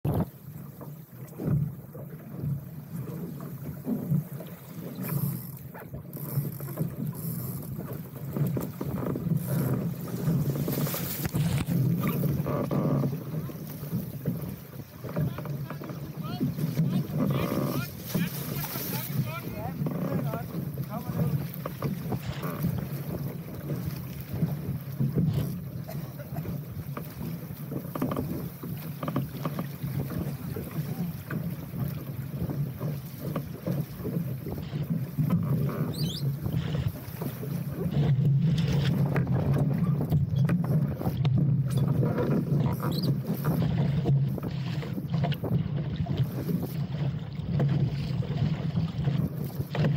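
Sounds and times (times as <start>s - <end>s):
water splashing along hull: 0.0s - 49.9s
wind buffeting microphone: 1.3s - 28.8s.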